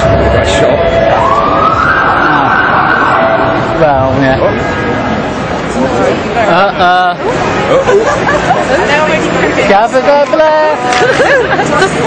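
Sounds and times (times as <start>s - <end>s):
emergency vehicle siren wailing: 0.0s - 5.6s.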